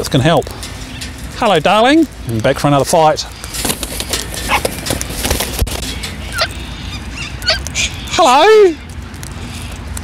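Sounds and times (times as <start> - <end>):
cockatoos squawking: 3.4 - 4.9, 5.8 - 8.5
bird wingbeats: 3.4 - 6.6.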